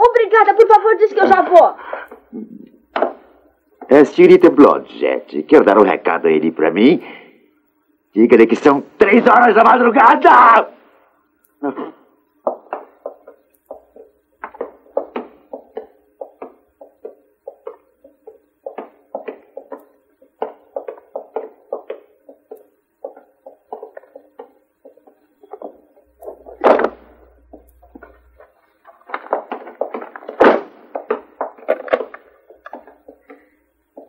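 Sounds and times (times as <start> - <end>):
loud thuds: 25.1 - 33.4.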